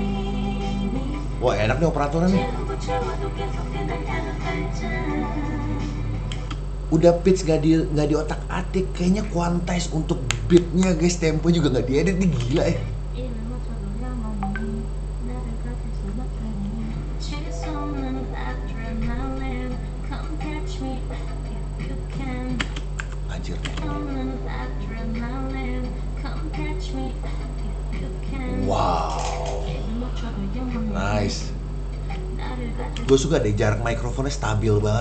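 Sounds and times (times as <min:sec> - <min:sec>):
woman singing: 0:00.0 - 0:01.4, 0:02.1 - 0:06.3, 0:13.1 - 0:22.9, 0:23.8 - 0:34.0
steady low hum: 0:00.0 - 0:35.0
backing track music: 0:02.2 - 0:06.6.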